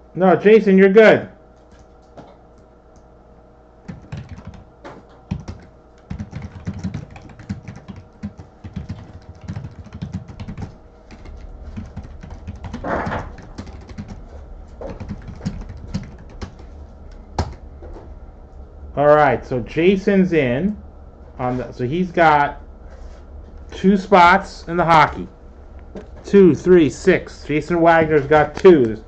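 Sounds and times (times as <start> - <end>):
keyboard typing: 3.9 - 4.6, 5.2 - 16.7, 17.4 - 17.6.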